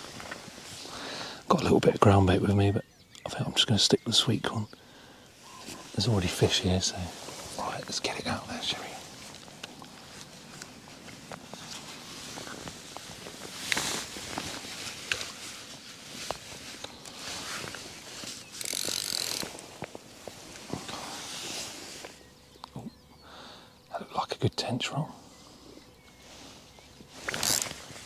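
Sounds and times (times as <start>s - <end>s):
fishing reel clicking: 18.6s - 19.5s.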